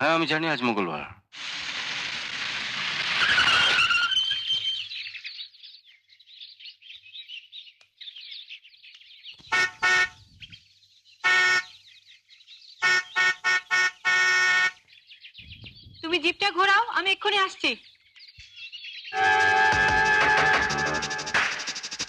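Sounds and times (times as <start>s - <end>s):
rush of noise with squeal: 1.4s - 4.9s
car horn honking: 9.5s - 10.2s, 11.2s - 11.8s, 12.8s - 14.8s, 19.2s - 21.2s.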